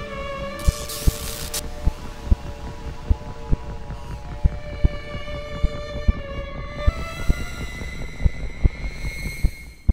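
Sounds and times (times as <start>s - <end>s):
brooding music: 0.0s - 9.9s
electric zap crackle: 0.6s - 1.7s.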